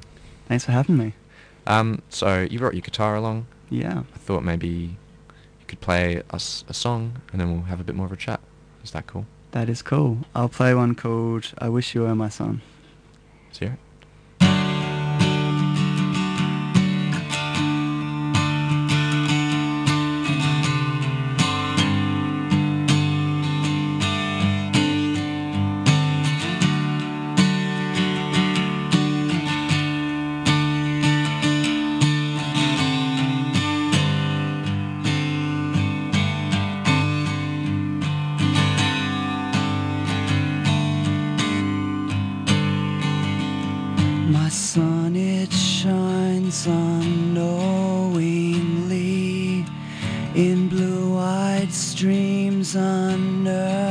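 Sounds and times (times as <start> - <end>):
acoustic guitar strummed and picked: 14.1 - 53.9.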